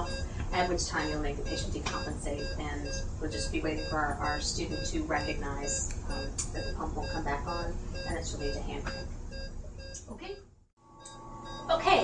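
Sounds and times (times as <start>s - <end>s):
short electronic beeps: 0.0s - 0.2s, 1.0s - 10.1s.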